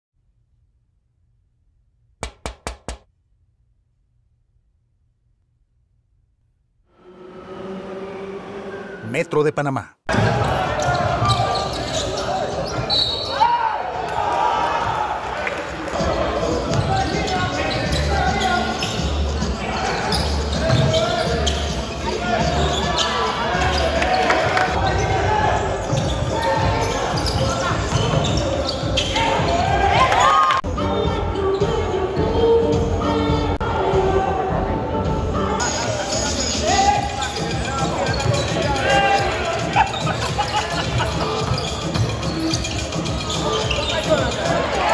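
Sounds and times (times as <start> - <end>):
players' voices and calls: 8.8 - 30.6, 33.9 - 44.9.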